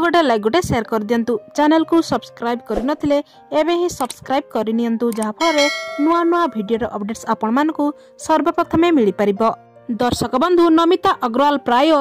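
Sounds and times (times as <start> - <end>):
bright bell chime: 5.4 - 6.8.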